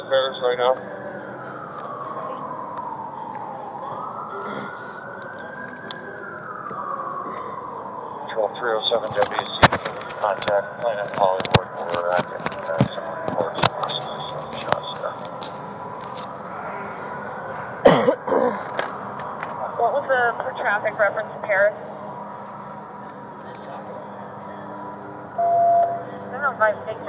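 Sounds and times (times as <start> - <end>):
voices: 0.0 - 27.0
faint high tone: 25.4 - 26.2.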